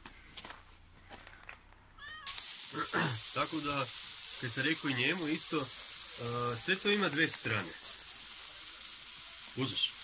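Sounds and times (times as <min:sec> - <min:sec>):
cat meowing: 0:02.0 - 0:02.4
meat sizzling on grill plate: 0:02.2 - 0:10.0.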